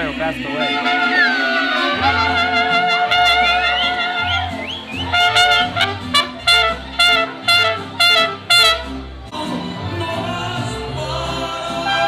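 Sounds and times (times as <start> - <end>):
trumpets: 0.0 - 9.2, 11.8 - 12.0
mariachi band playing: 0.0 - 12.0
deep bass line: 1.9 - 11.8.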